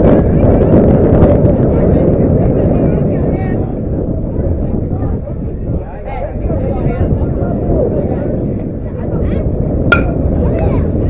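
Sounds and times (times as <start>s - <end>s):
people talking: 0.0s - 11.0s
metal bat hitting ball: 9.9s - 10.2s.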